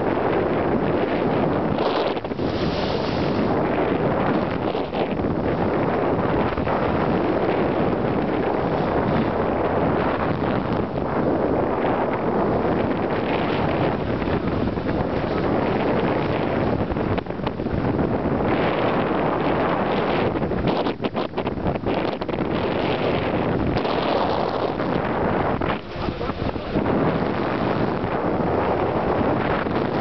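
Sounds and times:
water rushing at boat bow: 0.0s - 30.0s
wind buffeting microphone: 0.0s - 30.0s.

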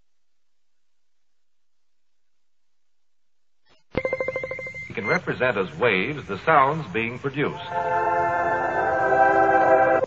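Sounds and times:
electronic ringing tone with trill: 4.0s - 5.2s.

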